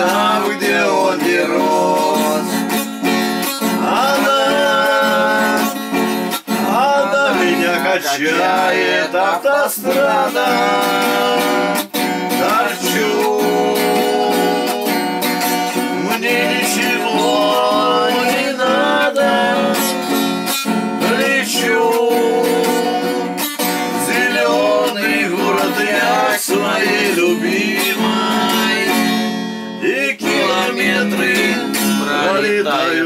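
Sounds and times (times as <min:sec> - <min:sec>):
acoustic guitar strumming: 0:00.0 - 0:33.0
man singing: 0:00.0 - 0:33.0.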